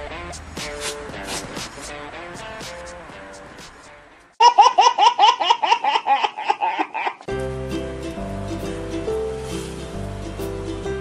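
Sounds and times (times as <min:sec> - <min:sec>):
music: 0:00.0 - 0:04.4, 0:07.3 - 0:11.0
baby laughing: 0:04.4 - 0:07.3.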